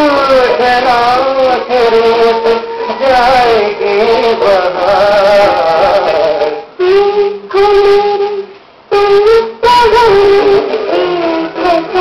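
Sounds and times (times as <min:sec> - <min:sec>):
musical backing: 0:00.0 - 0:12.0
person singing film song: 0:00.0 - 0:12.0.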